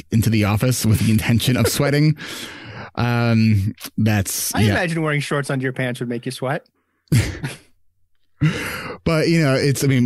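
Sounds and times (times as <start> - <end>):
man talking: 0.0 - 2.2, 2.9 - 6.7, 9.0 - 10.0
breath: 2.2 - 3.0, 8.4 - 9.0
man laughing breathily: 7.1 - 7.7, 8.4 - 9.0.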